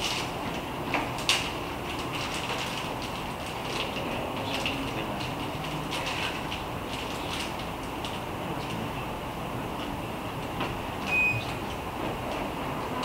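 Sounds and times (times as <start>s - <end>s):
low hum and hiss: 0.0s - 13.0s.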